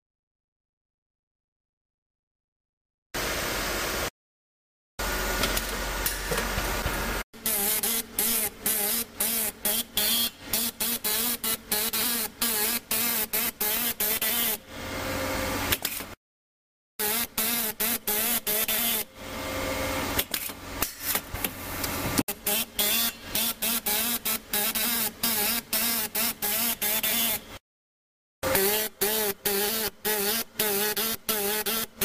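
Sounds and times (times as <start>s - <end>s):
marking stylus buzzing on metal: 7.4s - 14.6s, 17.0s - 19.1s, 22.3s - 27.6s, 28.4s - 32.0s.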